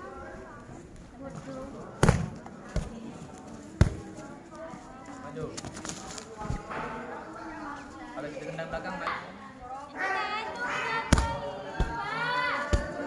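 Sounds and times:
kicks smacking a kick shield: 0:12.7 - 0:13.0.

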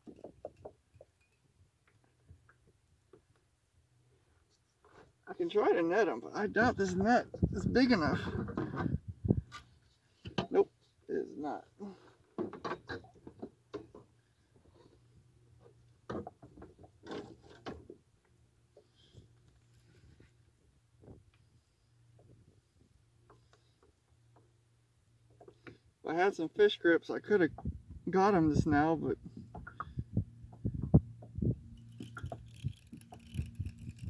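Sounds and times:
knocks and clicks in kayak: 0:29.3 - 0:31.4.

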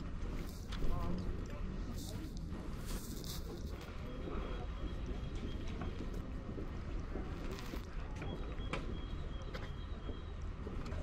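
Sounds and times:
footsteps on stone paving: 0:02.4 - 0:11.0.

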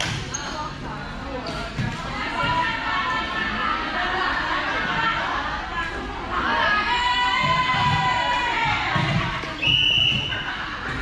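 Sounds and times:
players' voices chattering: 0:00.0 - 0:11.0
volleyball bouncing on court floor: 0:01.4 - 0:02.6, 0:07.4 - 0:11.0.

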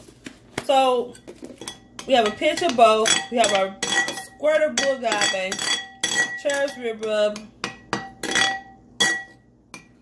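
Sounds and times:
metal spoon clinking on ceramic bowl: 0:01.1 - 0:10.0.

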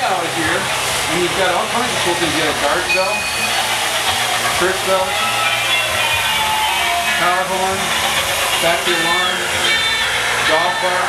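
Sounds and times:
model trains humming: 0:00.0 - 0:11.0
ringing pitched sound effect: 0:02.6 - 0:08.2.

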